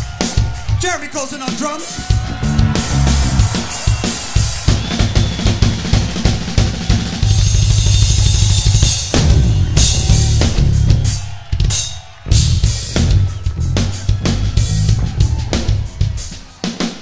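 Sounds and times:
rock drum kit fills: 0.0 - 17.0.

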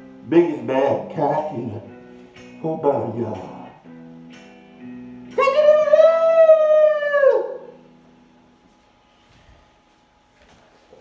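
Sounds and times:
person imitating wolf howl: 5.4 - 7.8.

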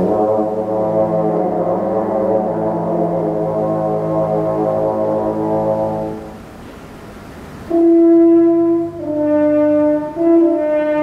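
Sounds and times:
french horn long held note: 7.7 - 11.0.

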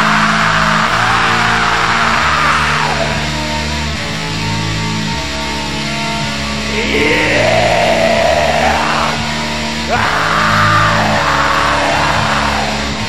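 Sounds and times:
harsh screamed vocals: 0.0 - 3.4, 6.7 - 13.0
black metal song: 0.0 - 13.0
distorted guitars and bass: 0.0 - 13.0.

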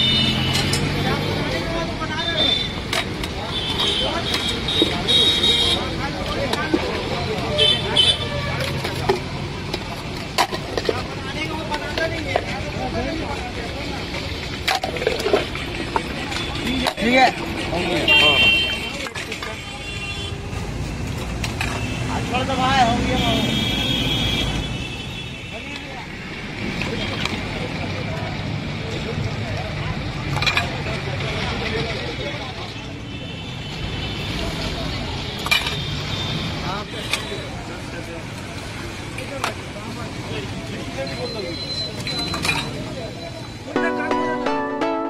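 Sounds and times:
traffic noise: 0.0 - 44.6
background chatter: 0.0 - 45.0.

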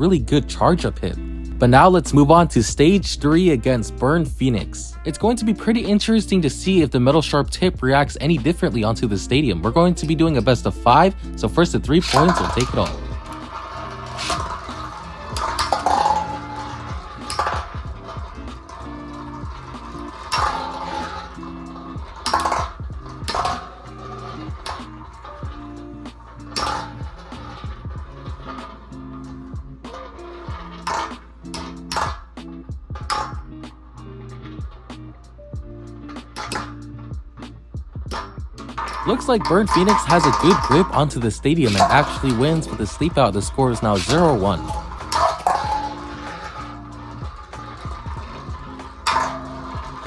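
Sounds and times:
background music with steady beat: 0.0 - 50.0
spinning tops clashing metallically: 0.0 - 50.0.

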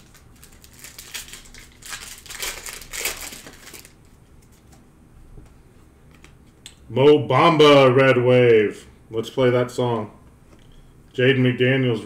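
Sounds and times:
foil wrapper crinkling and tearing: 0.0 - 4.2.

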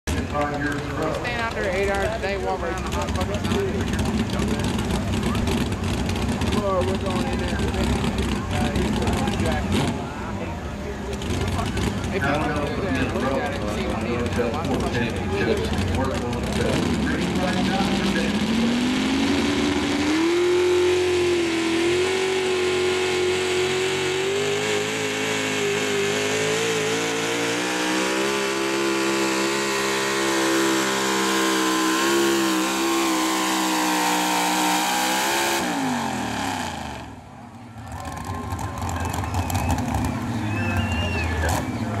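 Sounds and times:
crowd noise: 0.0 - 42.0
truck engine revving: 0.1 - 42.0.

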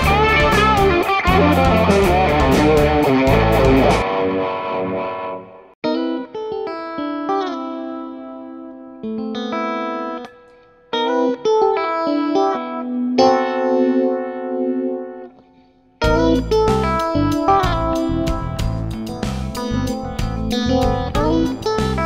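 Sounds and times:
electric guitar with phaser: 0.0 - 22.0.

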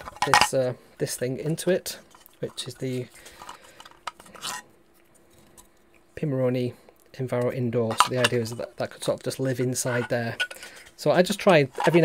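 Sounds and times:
plastic parts rubbing together: 0.0 - 5.8, 7.8 - 12.0.

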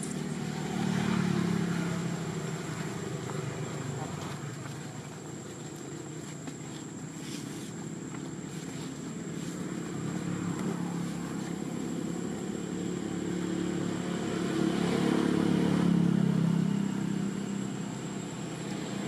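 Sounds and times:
vehicle engine passing: 0.0 - 19.0.

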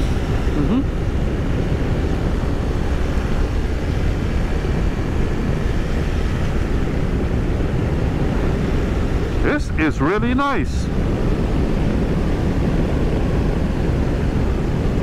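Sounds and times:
motorcycle engine drone: 0.0 - 15.0
wind rushing over microphone: 0.0 - 15.0.

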